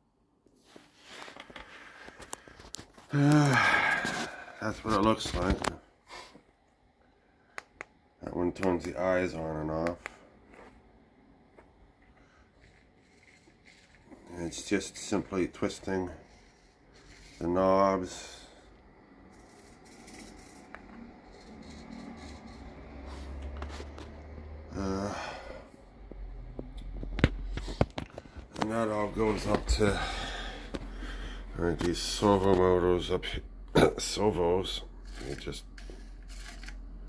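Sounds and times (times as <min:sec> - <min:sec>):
low hum: 0:10.2 - 0:37.0.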